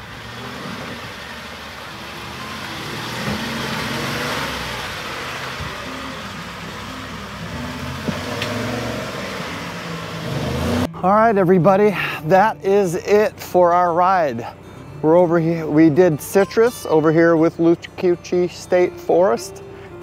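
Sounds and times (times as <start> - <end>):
truck engine revving: 0.0 - 11.7.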